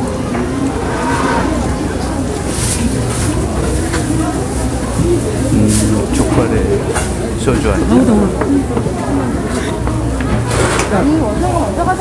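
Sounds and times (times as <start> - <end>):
indistinct voices of shoppers: 0.0 - 12.0
steady low rumble: 0.3 - 3.6.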